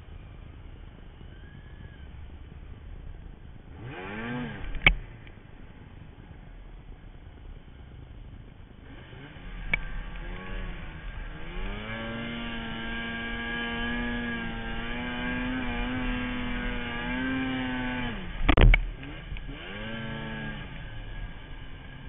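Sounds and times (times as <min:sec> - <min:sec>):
snowmobile engine revving: 0:03.6 - 0:05.2, 0:08.8 - 0:22.0.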